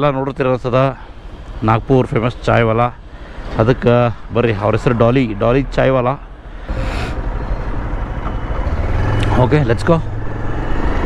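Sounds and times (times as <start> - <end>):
motorcycle engine rumbling: 4.2 - 11.0.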